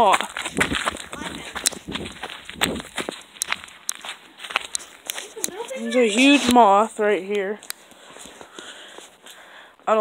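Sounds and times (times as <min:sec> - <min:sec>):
footsteps on gravelly dirt: 0:00.0 - 0:09.4.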